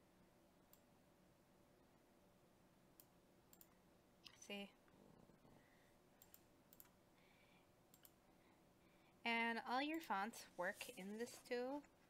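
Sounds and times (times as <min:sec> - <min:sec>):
computer mouse clicks: 0:03.0 - 0:04.4, 0:06.2 - 0:07.0, 0:07.9 - 0:08.2.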